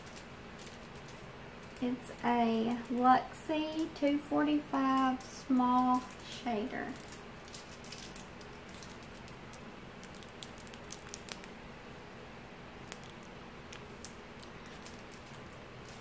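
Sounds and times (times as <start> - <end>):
plastic sleeve crinkling: 0.0 - 11.6, 12.8 - 16.0
low room hum: 0.0 - 16.0.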